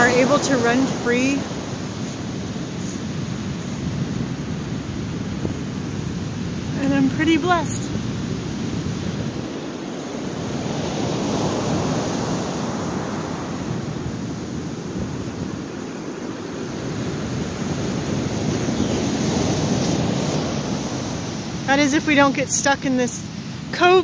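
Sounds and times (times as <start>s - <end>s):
ocean waves breaking: 0.0s - 24.0s.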